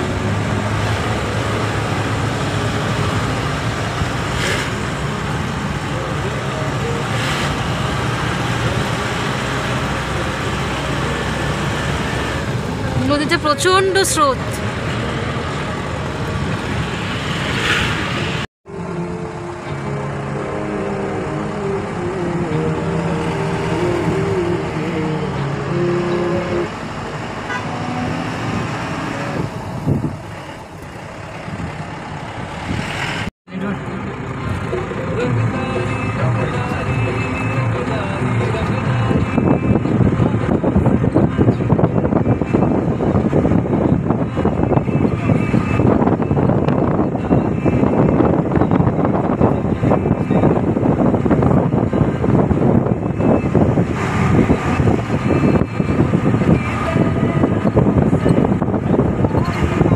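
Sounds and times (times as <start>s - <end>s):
vehicle engine and road noise: 0.0s - 59.9s
wind on microphone: 27.9s - 30.5s, 31.4s - 33.3s, 38.5s - 59.9s.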